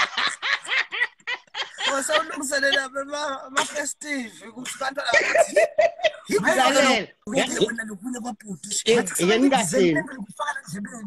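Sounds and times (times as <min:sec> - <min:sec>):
man laughing heartily: 0:00.0 - 0:03.0, 0:05.1 - 0:06.4.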